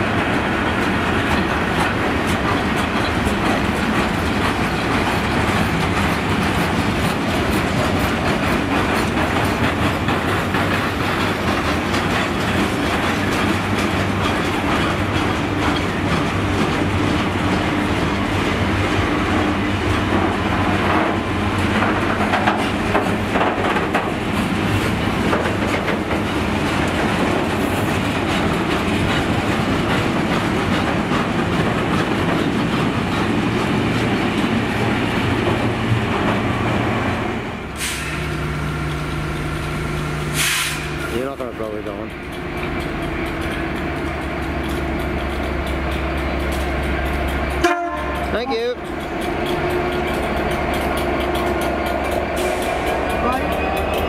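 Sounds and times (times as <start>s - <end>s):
wheels clacking over rail joints: 0.0s - 36.9s, 37.8s - 54.0s.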